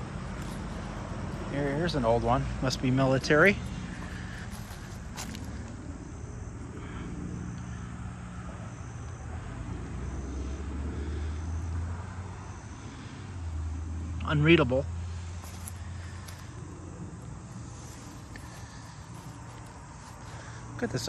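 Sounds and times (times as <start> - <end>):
faint insect chirp: 0.0 - 21.0.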